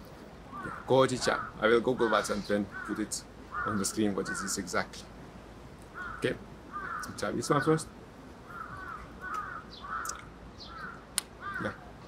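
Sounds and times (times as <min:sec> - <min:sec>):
bird calling: 0:00.4 - 0:05.2, 0:05.8 - 0:12.0.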